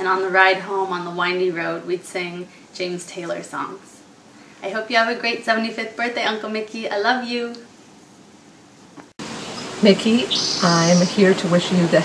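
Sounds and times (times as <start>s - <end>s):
woman speaking: 0.0s - 7.6s, 9.8s - 12.0s
steady background hiss: 0.0s - 12.0s.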